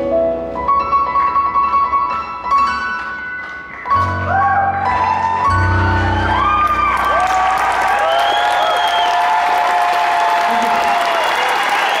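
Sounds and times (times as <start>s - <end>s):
audience applauding and cheering: 2.4s - 12.0s.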